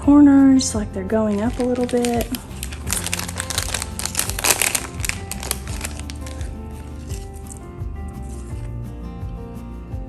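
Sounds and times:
background music: 0.0 - 10.0
plastic packaging crinkling: 1.2 - 8.7.

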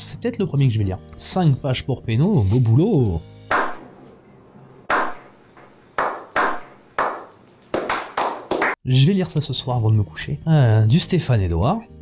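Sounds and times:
slow hand claps with echo: 3.5 - 3.8, 4.9 - 8.8.

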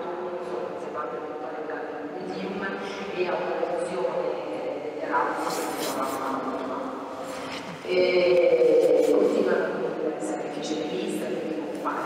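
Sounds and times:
person talking over a microphone: 5.0 - 6.9, 7.8 - 12.0.

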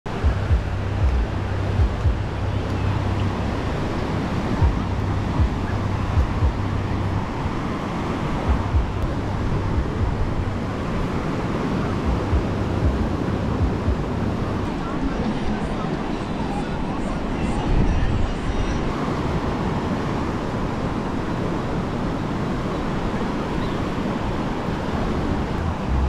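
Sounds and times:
surf washing onto beach: 0.1 - 26.0
wind buffeting microphone: 0.1 - 26.0.

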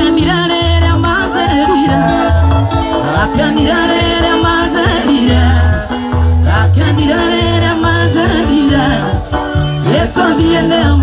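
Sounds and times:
backing track with heavy bass: 0.0 - 11.0
person singing: 0.0 - 11.0.

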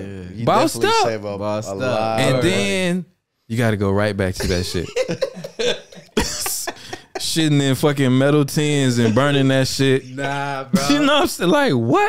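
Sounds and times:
man laughing: 4.4 - 7.6, 8.9 - 11.2.

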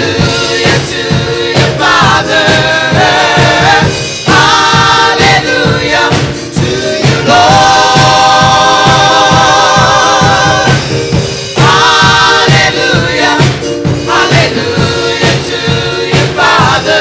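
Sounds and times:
gospel choir singing: 0.0 - 17.0
steady beat: 0.0 - 17.0.

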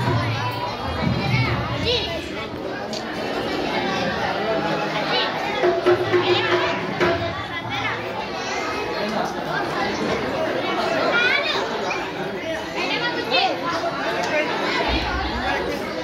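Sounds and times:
many voices talking: 0.0 - 16.0.

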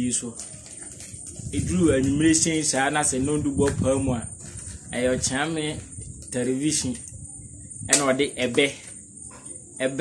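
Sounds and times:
man speaking: 0.0 - 0.4, 1.6 - 7.1, 7.9 - 8.9, 9.8 - 10.0
crickets chirring: 0.0 - 10.0.

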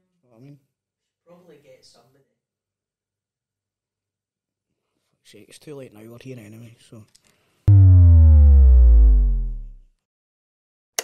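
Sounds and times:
electronic power-down buzz: 7.7 - 9.8.

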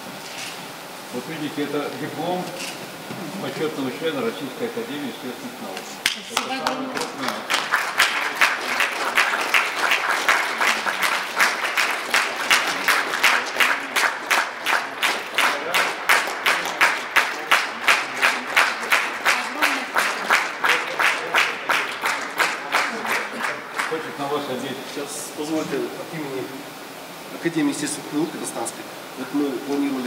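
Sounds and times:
audience clapping in rhythm: 6.0 - 24.4.

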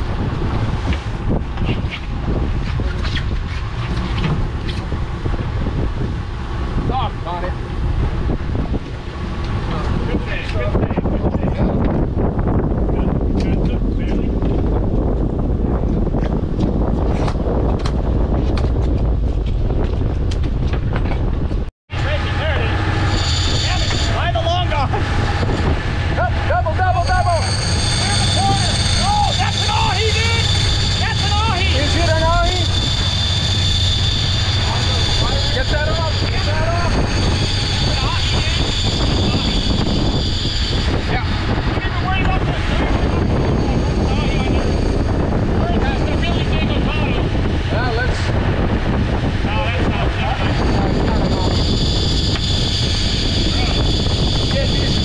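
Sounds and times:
boat engine running: 0.0 - 19.3, 21.9 - 55.0
wind: 0.0 - 55.0.

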